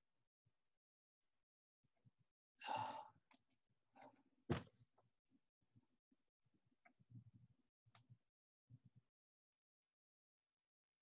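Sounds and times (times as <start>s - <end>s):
person sighing: 2.6s - 3.1s.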